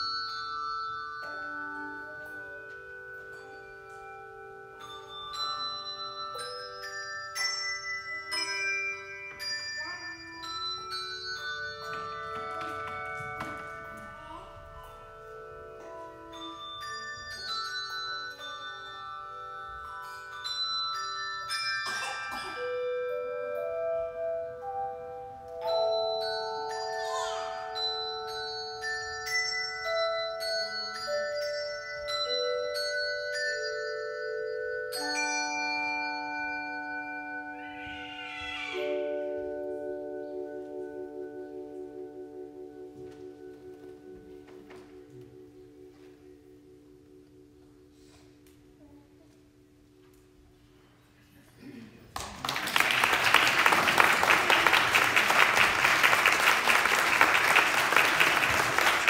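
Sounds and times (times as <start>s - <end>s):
handbell choir playing: 0.0s - 48.2s, 52.5s - 59.0s.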